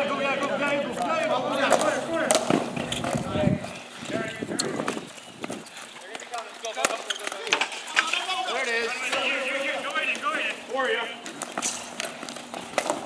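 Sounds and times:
players shouting: 0.0 - 3.4, 6.7 - 11.2.

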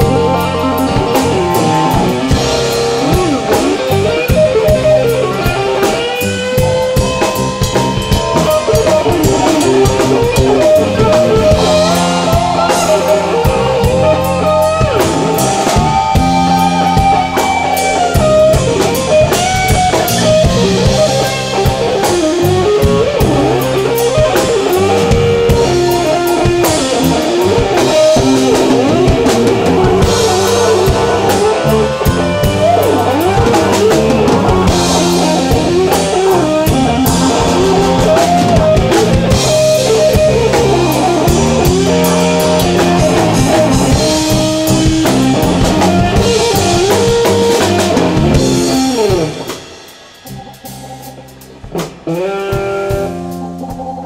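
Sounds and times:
blues band playing: 0.0 - 54.0
drum kit: 0.0 - 54.0
electric guitar lead: 0.0 - 54.0.

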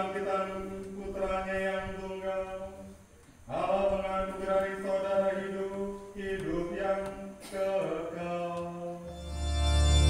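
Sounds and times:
chanted note: 9.1 - 10.0
electronic keyboard organ chord: 9.1 - 10.0.

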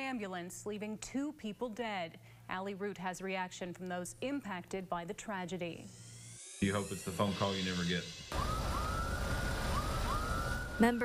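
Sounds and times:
emergency vehicle siren: 6.0 - 11.0.

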